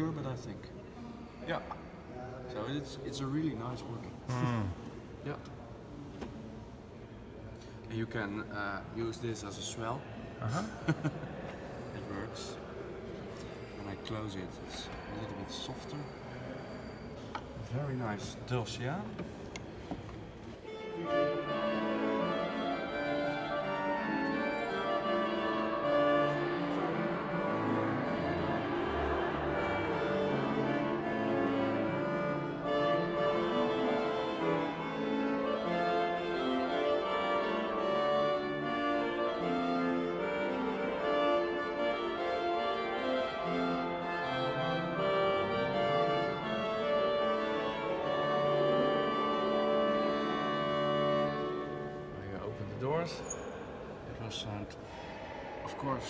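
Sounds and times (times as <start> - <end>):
pipe organ playing chords: 20.6 - 53.0.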